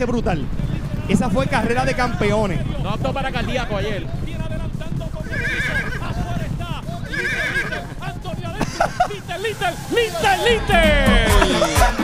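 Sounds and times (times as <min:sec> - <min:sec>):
horse whinnying: 0:05.2 - 0:06.4, 0:07.0 - 0:08.1.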